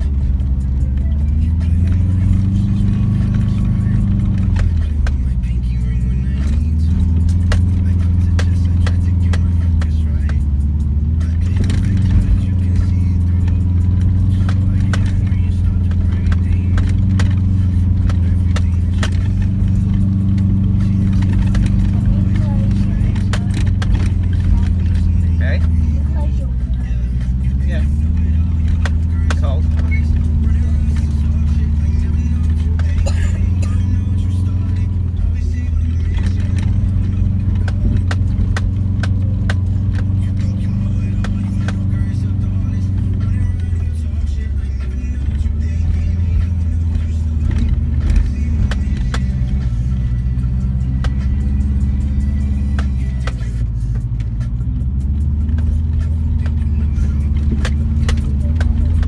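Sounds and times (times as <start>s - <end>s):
car engine droning uphill: 0.0s - 59.0s
rattles and knocks from rough road: 0.0s - 59.0s.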